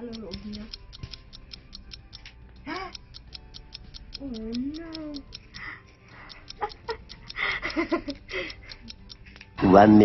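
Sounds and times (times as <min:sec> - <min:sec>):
fast even ticking: 0:00.0 - 0:10.0.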